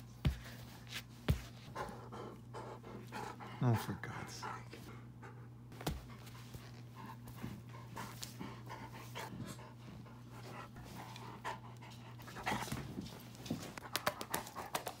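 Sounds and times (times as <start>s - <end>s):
dog panting: 1.5s - 15.0s.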